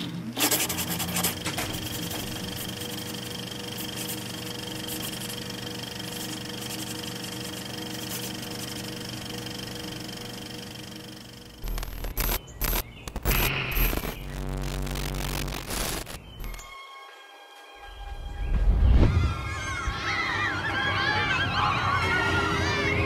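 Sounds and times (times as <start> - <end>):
mechanical whirr with fast clicking: 0.4 - 16.7.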